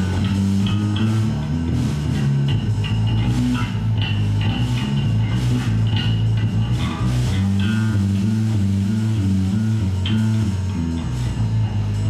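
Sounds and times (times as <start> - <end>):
blues band playing: 0.0 - 12.0
electric guitar and bass riff: 0.0 - 12.0.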